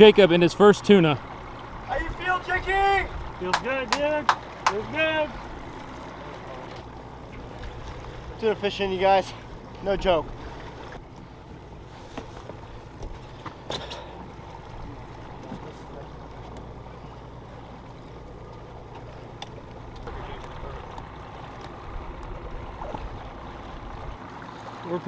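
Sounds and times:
boat engine running: 0.0 - 25.0
water wash: 0.0 - 25.0
faint clicks: 18.4 - 22.4.

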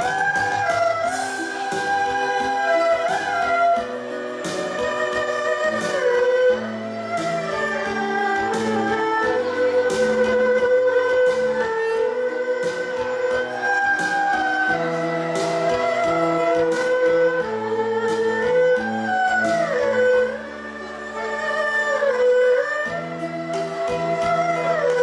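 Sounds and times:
erhu ensemble melody: 0.0 - 25.0
regular beat: 0.0 - 25.0.

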